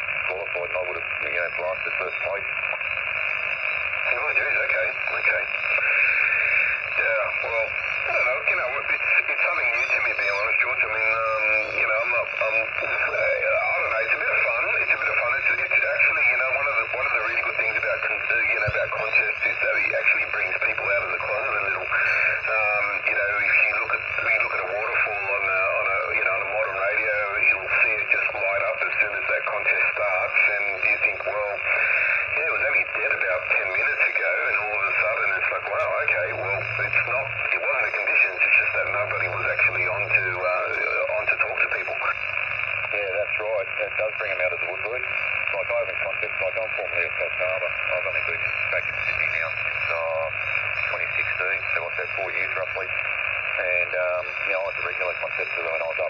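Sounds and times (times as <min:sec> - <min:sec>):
radio band hiss: 0:00.0 - 0:56.0
radio voice speaking: 0:00.0 - 0:56.0.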